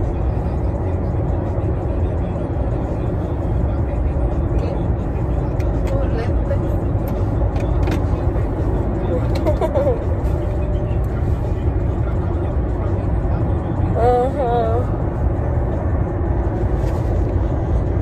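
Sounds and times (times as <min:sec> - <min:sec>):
car cabin rumble: 0:00.0 - 0:18.0.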